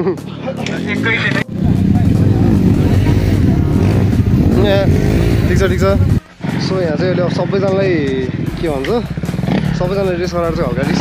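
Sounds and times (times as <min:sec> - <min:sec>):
dirt bike engines rumbling: 0:00.1 - 0:11.0.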